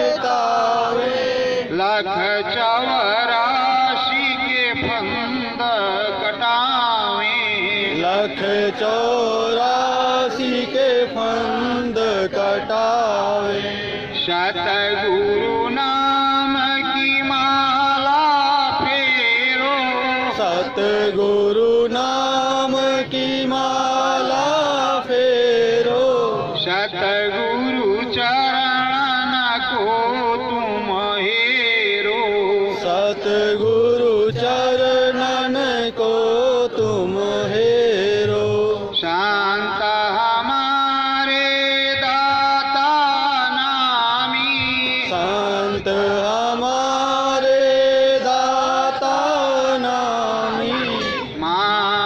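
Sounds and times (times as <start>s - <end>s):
man chanting into microphone: 0.0s - 52.0s.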